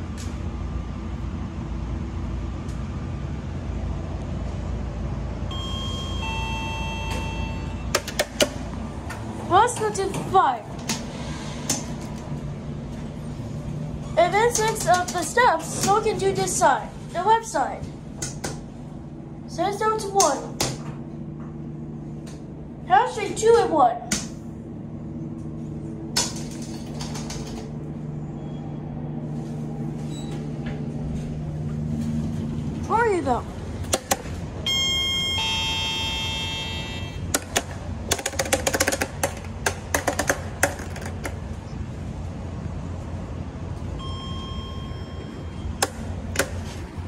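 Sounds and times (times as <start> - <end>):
elevator motor hum: 0.0 - 47.0
faint beep: 5.5 - 7.9, 44.0 - 45.8
elevator arrival chime: 5.5 - 8.0, 34.6 - 37.3, 43.9 - 45.8
sharp clicks and clatter: 37.3 - 41.4.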